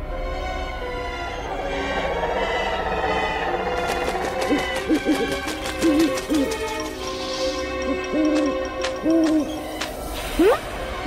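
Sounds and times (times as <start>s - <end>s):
owl hooting: 1.2s - 6.6s.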